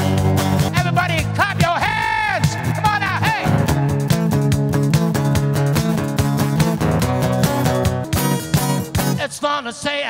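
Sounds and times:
lead guitar bending notes: 0:00.0 - 0:09.2
live band music: 0:00.0 - 0:09.4.

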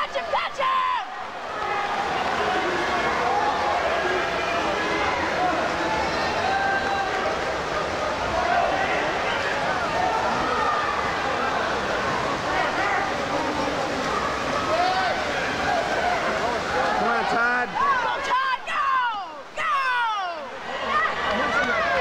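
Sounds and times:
crowd cheering and shouting: 0:00.0 - 0:22.0
single voices yelling: 0:17.8 - 0:22.0.

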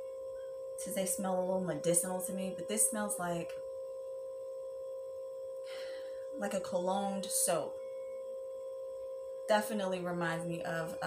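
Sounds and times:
steady electronic whine: 0:00.0 - 0:11.0
soft breath: 0:05.6 - 0:06.3.

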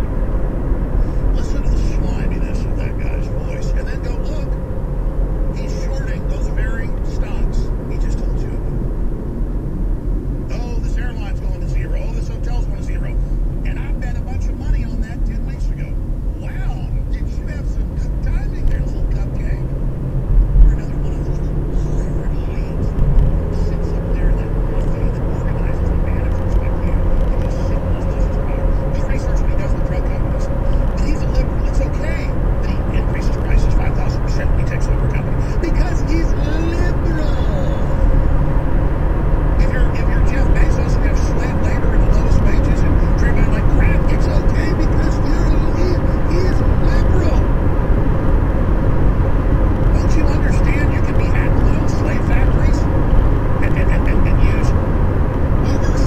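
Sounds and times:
car cabin road rumble: 0:00.0 - 0:56.0
faint steady hum: 0:00.0 - 0:56.0.

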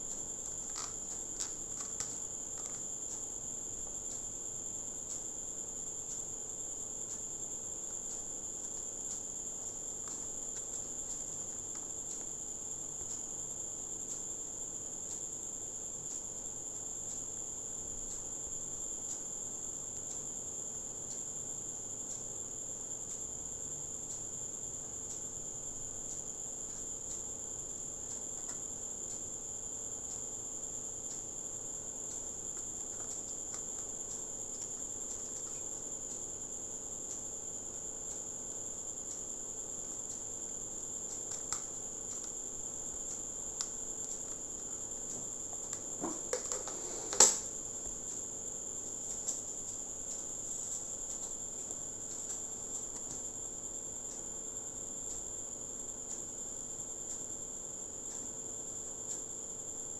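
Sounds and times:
steady high-pitched whine: 0:00.0 - 0:59.9.

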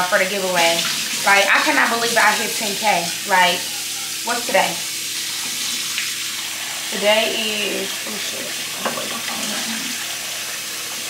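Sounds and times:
faucet running into sink: 0:00.0 - 0:11.0.

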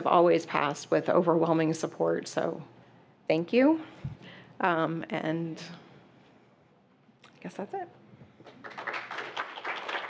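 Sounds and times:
audience applauding: 0:08.4 - 0:10.0.

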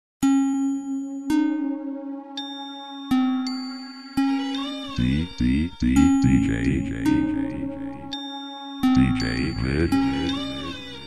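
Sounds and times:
bell-like chime strikes: 0:00.2 - 0:01.5.

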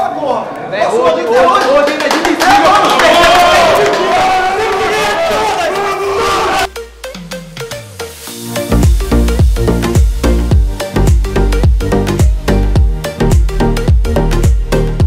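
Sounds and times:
men shouting together: 0:02.4 - 0:06.7
electronic dance music: 0:02.5 - 0:15.0
falling bass sweep: 0:06.5 - 0:14.6
heavy bass beat: 0:06.7 - 0:15.0.

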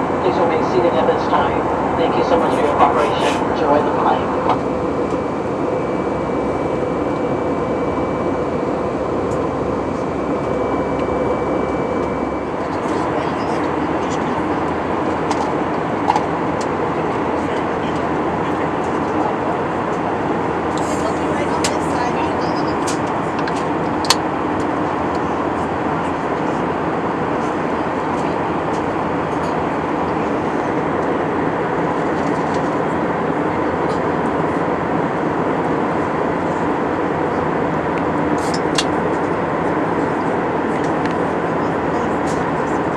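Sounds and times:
jet engine and airflow noise: 0:00.0 - 0:42.9.

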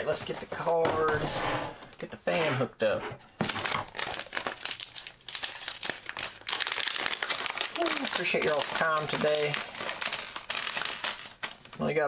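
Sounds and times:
plastic bag crinkling: 0:03.5 - 0:12.0.

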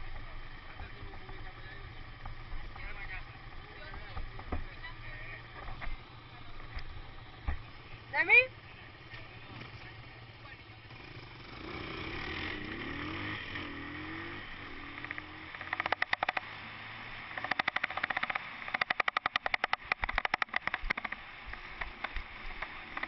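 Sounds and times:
dirt bike engine running: 0:00.0 - 0:23.0.

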